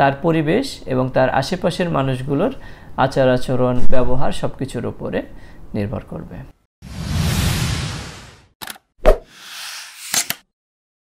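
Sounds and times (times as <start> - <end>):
whoosh: 6.8 - 8.5.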